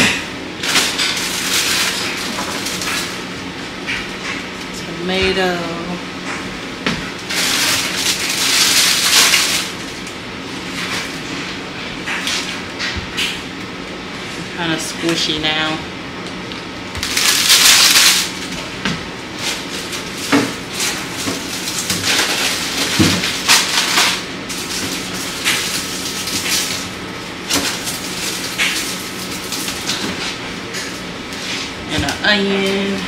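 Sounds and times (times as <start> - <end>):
steady low hum: 0.0 - 33.0
plastic packaging crinkling: 0.6 - 3.3, 7.2 - 11.3, 16.4 - 18.7, 19.3 - 30.4.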